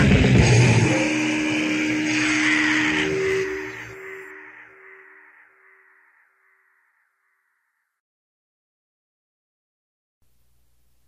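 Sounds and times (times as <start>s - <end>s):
distorted electric guitar feedback: 0.0s - 6.0s.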